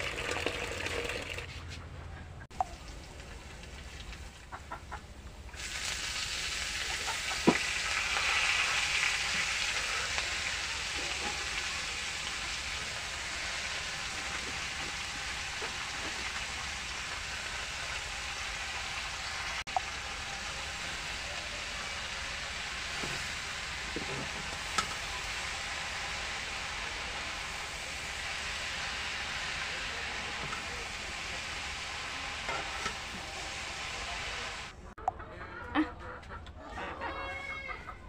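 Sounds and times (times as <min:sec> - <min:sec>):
leaves sizzling in oil: 0:05.5 - 0:34.7.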